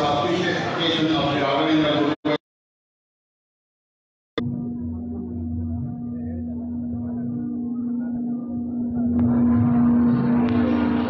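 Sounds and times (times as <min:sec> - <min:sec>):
large crowd noise: 0:00.0 - 0:02.4, 0:04.6 - 0:11.0
ceremonial music drone: 0:04.4 - 0:11.0.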